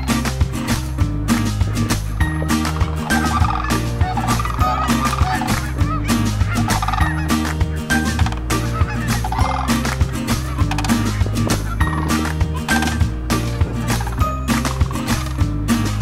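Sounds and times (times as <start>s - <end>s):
music with steady beat: 0.0s - 16.0s
cranes calling: 2.5s - 13.1s.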